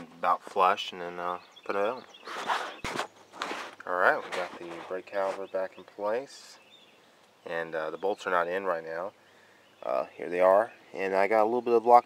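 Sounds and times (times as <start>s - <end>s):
scraping and handling noises: 2.1s - 5.5s.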